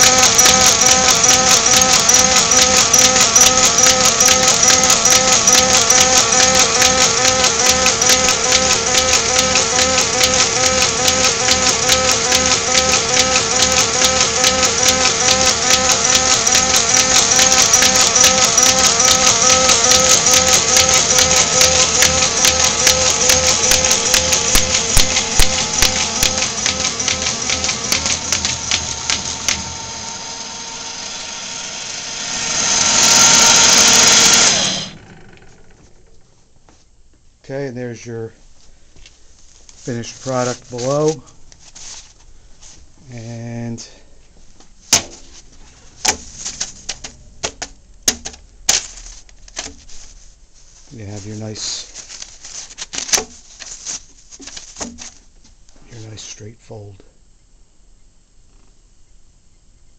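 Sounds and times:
paper clicking and rattling: 0:00.0 - 0:29.8, 0:39.6 - 0:42.8, 0:44.8 - 0:55.6
steady motor whine: 0:00.0 - 0:36.2.

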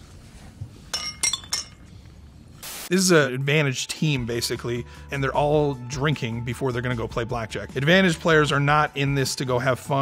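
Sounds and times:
drinking glasses clinking: 0:00.9 - 0:01.9.

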